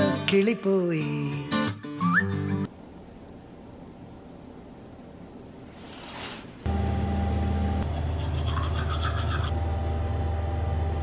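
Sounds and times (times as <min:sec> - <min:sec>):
low mechanical hum: 0:02.7 - 0:11.0.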